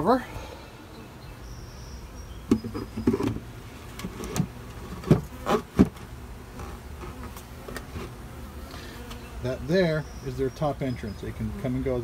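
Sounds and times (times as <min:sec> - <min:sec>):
bees buzzing: 0:00.0 - 0:12.0
knocks of wooden cover: 0:02.5 - 0:03.4, 0:04.0 - 0:06.0.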